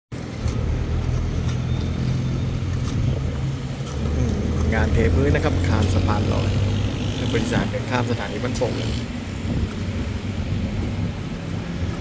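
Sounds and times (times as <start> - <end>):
engine running with low drone: 0.1 - 12.0.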